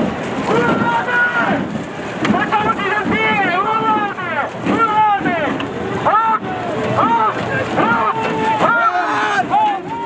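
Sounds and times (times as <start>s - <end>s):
people shouting and yelling: 0.4s - 1.7s, 2.3s - 10.0s.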